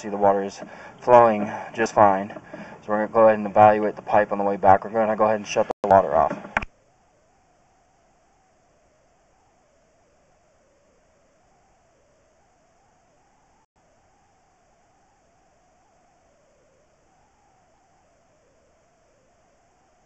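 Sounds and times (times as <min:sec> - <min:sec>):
faint steady hiss: 0:00.0 - 0:20.0
faint wavering hum: 0:00.0 - 0:20.0.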